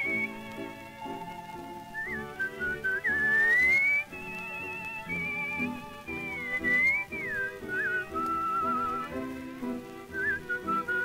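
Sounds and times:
whistled melody: 0.0 - 11.0.

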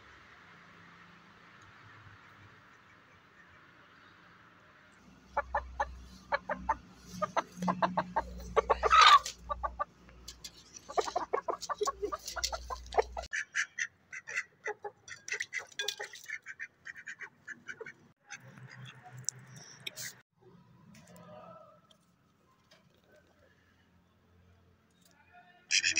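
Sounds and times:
chickens clucking: 5.2 - 19.0
chicken squawk: 5.4 - 9.9.

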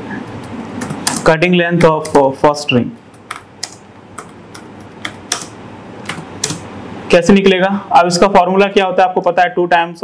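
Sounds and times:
computer keyboard typing: 0.3 - 2.3, 3.1 - 6.7.

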